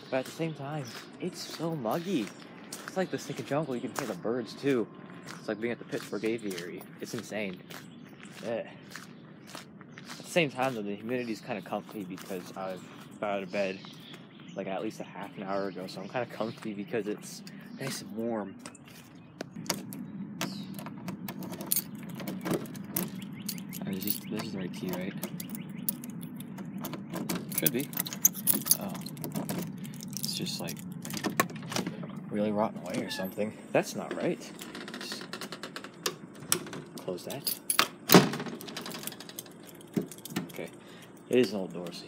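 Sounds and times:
steady low hum: 0.0 - 42.0
keys jangling: 21.3 - 31.5, 37.3 - 41.3
door banging: 30.8 - 32.2, 37.7 - 40.6.

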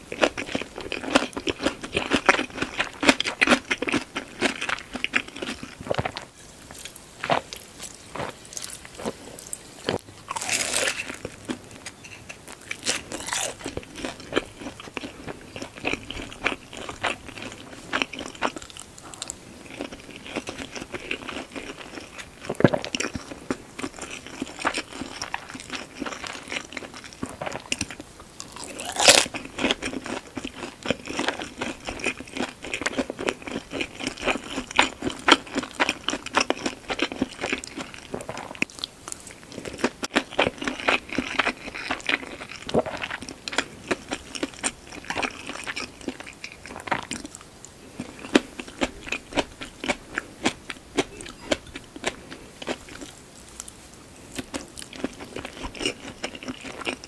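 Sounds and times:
crunchy chewing: 0.0 - 57.0.

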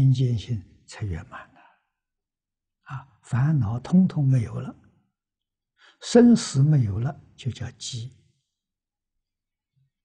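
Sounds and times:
elderly man speaking: 0.0 - 1.8, 2.9 - 4.8, 6.0 - 8.2.

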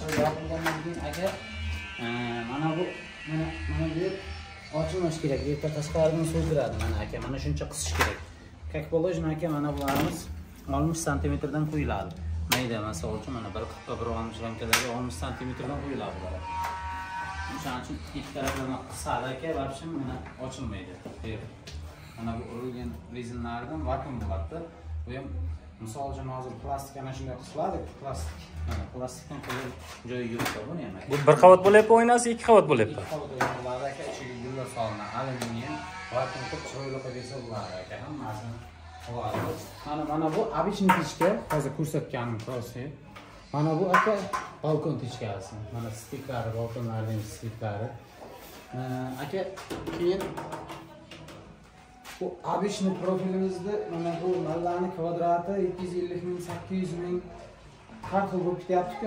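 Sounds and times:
man talking: 30.4 - 42.7.

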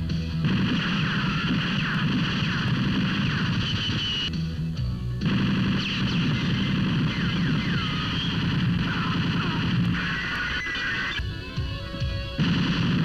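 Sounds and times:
film music: 0.0 - 13.0
rapid gunfire: 0.4 - 4.3, 5.2 - 10.9, 12.4 - 13.0.

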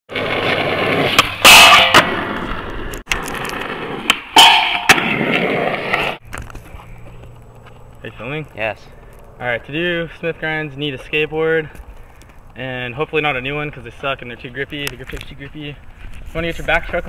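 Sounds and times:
skateboard wheels rolling on asphalt: 0.1 - 17.0
skateboard pops: 0.9 - 8.0.

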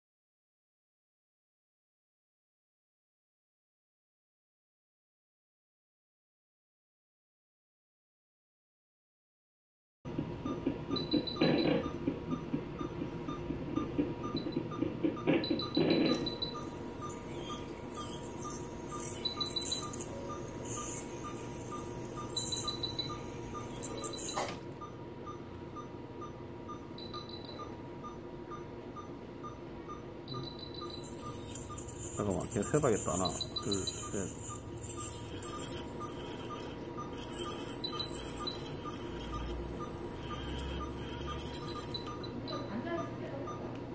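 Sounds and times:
patient monitor beeping: 10.4 - 43.8
higher monitor beeps: 10.5 - 43.7
dental equipment hiss: 16.6 - 24.5, 31.1 - 39.6, 40.2 - 42.3.

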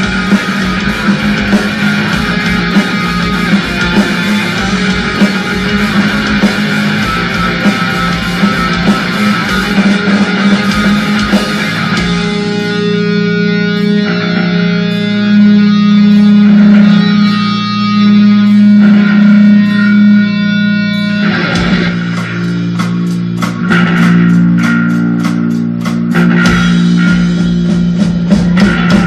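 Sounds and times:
drum kit beat: 0.0 - 29.0
electric guitar chords: 0.0 - 29.0.

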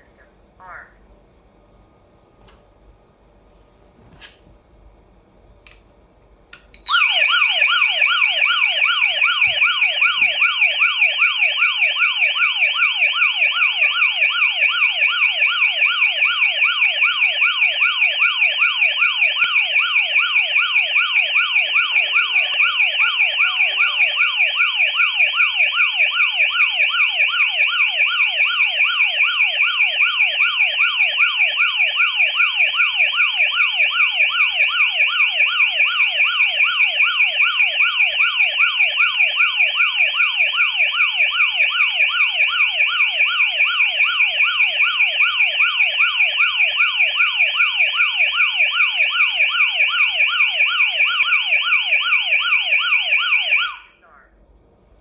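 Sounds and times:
burglar alarm siren wailing: 6.8 - 54.2.

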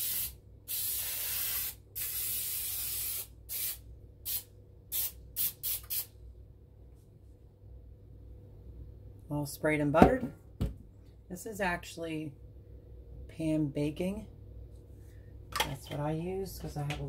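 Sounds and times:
cooking spray hissing: 0.0 - 4.4.

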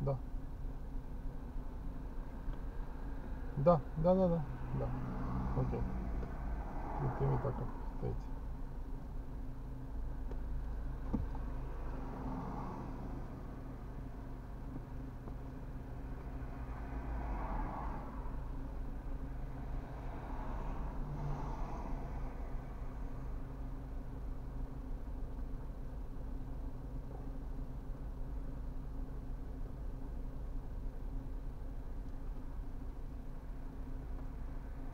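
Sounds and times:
low hum inside car cabin: 0.0 - 34.9
cars passing on wet road: 4.2 - 8.2, 11.1 - 13.8, 16.1 - 23.3.

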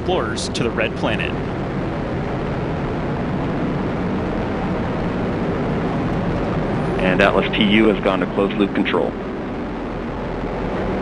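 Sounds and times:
rocket engine deep rumbling: 0.0 - 11.0.

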